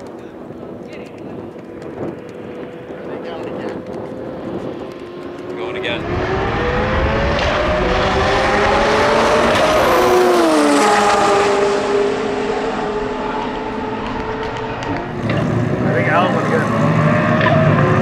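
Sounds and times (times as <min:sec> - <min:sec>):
car engines accelerating hard: 0:00.0 - 0:18.0.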